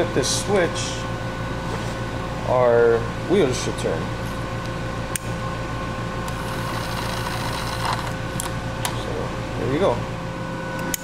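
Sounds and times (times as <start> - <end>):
room hum: 0.0 - 11.0
small electric motor whir: 6.3 - 8.2.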